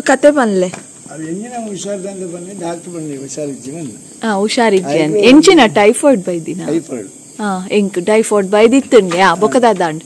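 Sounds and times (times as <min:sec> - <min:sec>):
person talking: 0:04.3 - 0:08.0, 0:08.6 - 0:10.0.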